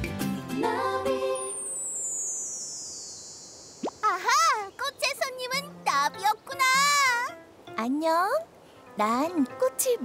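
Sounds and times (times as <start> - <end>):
cartoon cry gliding upward: 4.0 - 4.8.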